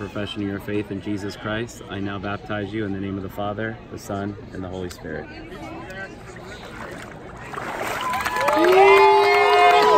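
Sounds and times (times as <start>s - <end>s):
water sloshing and splashing: 6.2s - 8.6s.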